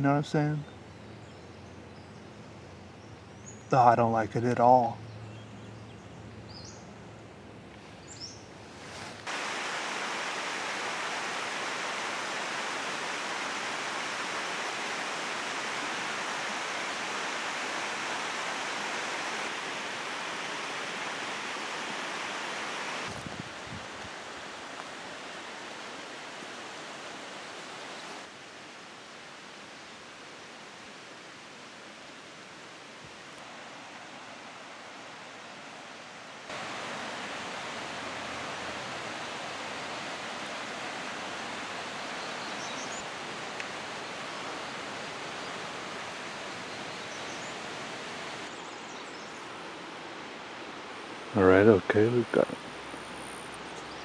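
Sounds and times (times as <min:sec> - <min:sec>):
running water rushing: 0:08.6 - 0:54.0.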